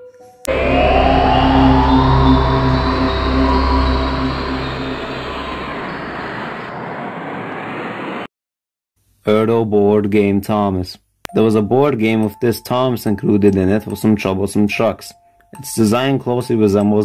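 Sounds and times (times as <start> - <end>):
ominous music sting: 0.5 - 7.2
deep rumble: 0.5 - 7.3.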